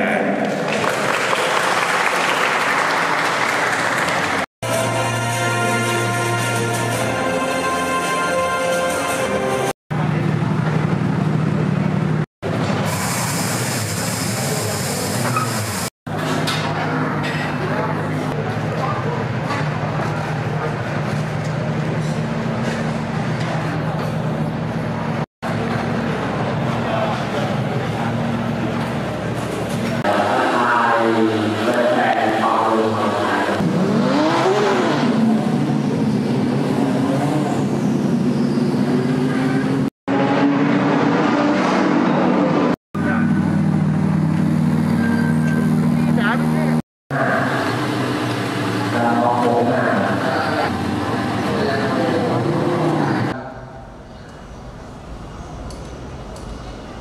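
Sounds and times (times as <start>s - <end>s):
racing car engines idling: 16.1s - 34.4s, 43.0s - 57.0s.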